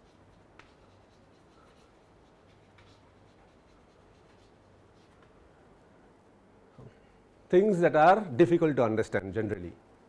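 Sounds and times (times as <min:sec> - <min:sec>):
chalk writing on chalkboard: 0:00.0 - 0:05.4
low room hum: 0:00.0 - 0:10.0.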